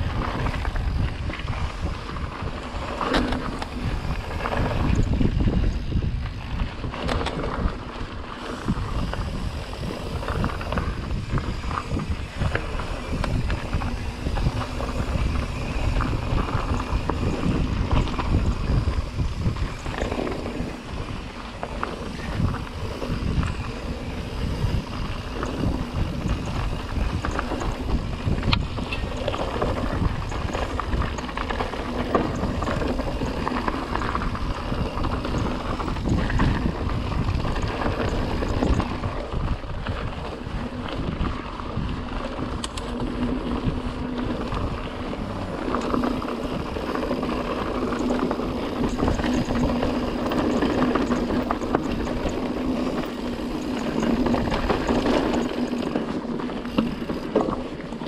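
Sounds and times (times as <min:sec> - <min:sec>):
bike clattering over bumps: 0:00.0 - 0:58.0
wind rush on microphone: 0:00.0 - 0:58.0.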